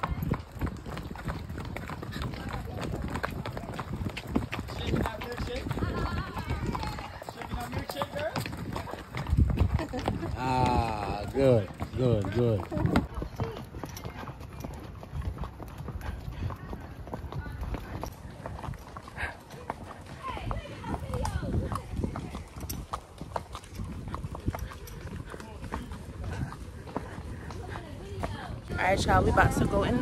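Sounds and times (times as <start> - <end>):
horse hooves clip-clopping on dirt: 0.0 - 30.0.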